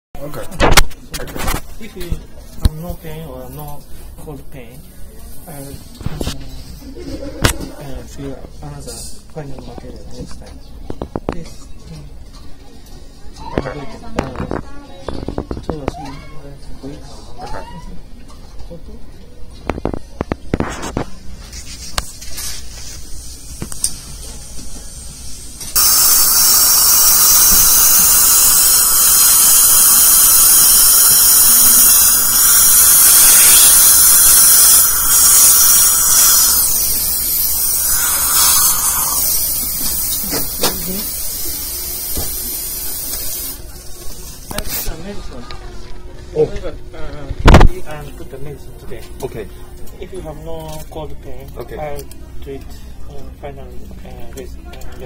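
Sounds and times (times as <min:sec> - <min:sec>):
dental drill whine: 0:25.1 - 0:43.6.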